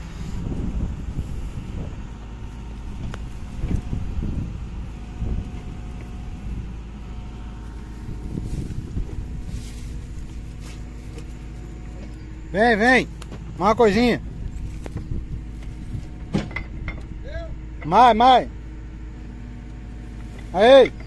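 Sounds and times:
diesel engine rumbling: 0.0s - 21.0s.

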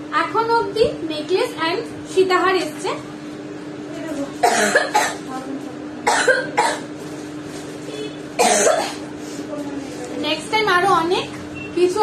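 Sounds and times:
woman coughing: 4.4s - 5.3s, 6.0s - 6.9s, 8.4s - 9.1s.

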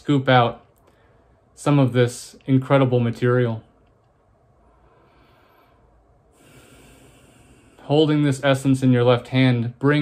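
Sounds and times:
man speaking: 0.0s - 0.8s, 1.6s - 3.8s, 7.8s - 10.0s
room hiss: 0.0s - 10.0s
man breathing in: 0.8s - 1.5s, 4.6s - 7.8s.

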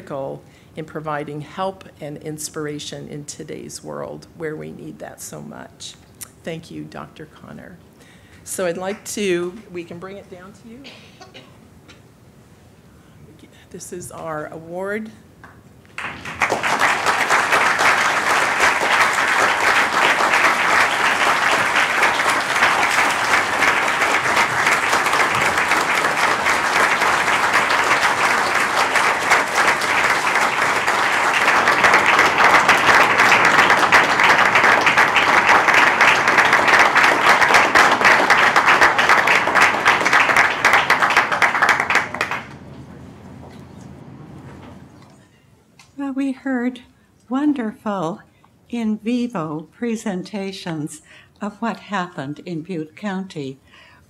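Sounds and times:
audience applauding: 15.9s - 42.8s.

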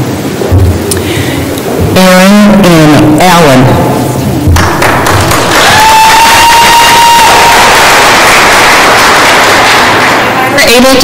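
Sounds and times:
audience applauding: 4.6s - 11.0s
high-pitched cheer: 5.1s - 10.4s.

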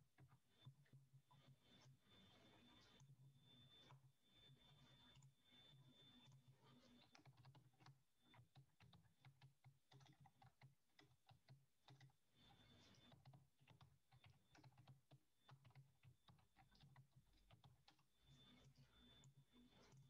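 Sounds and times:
typing on computer keyboard: 6.9s - 19.2s.

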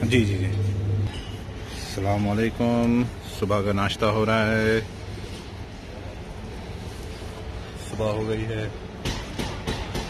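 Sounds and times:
tableware clinking: 1.0s - 1.7s.

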